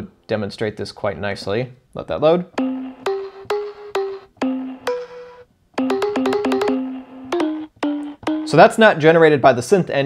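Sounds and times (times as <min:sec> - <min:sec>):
plucked synth notes: 0:02.6 - 0:08.9.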